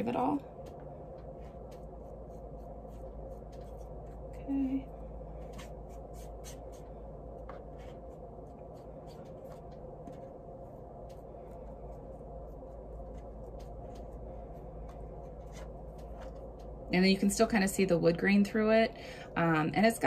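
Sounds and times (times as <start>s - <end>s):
steady low hum: 0.0s - 20.0s
paintbrush scratching on wood: 1.4s - 4.4s, 5.5s - 7.0s.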